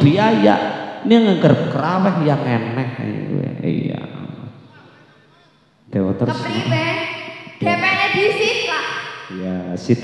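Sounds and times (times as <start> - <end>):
voice over public address: 6.3 - 9.6.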